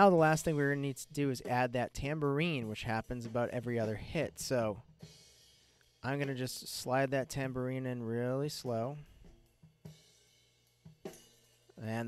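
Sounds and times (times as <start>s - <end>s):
drum and cymbal hits: 0.0s - 12.0s.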